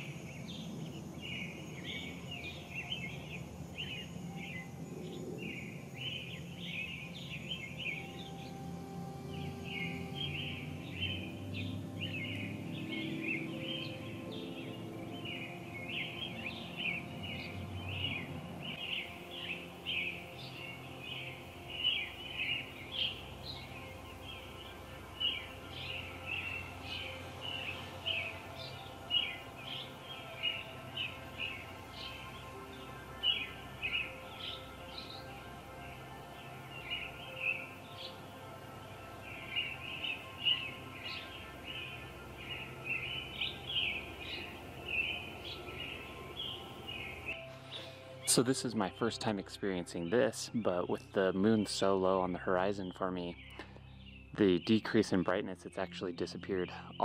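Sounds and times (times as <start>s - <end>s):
birds chirping: 0.0s - 57.0s
soft background music: 0.0s - 57.0s.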